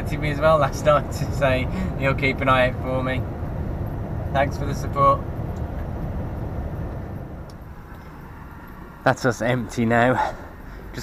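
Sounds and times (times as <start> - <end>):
lorry engine and road rumble: 0.0 - 11.0.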